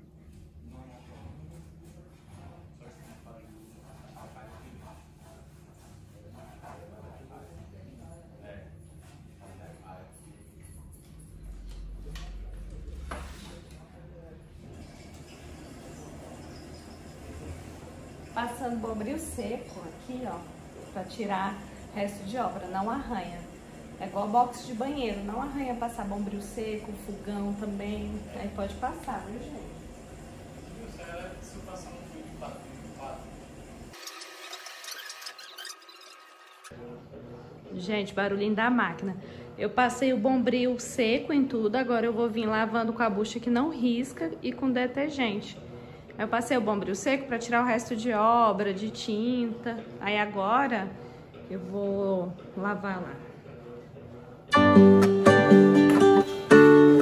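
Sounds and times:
low steady hum: 0.0s - 33.3s.

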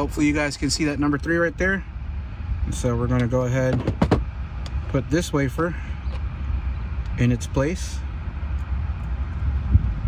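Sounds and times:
low outdoor rumble: 0.0s - 10.0s.

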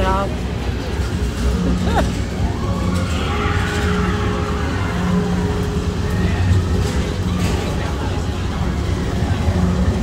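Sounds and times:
ride vehicles rumbling on track: 0.0s - 10.0s.

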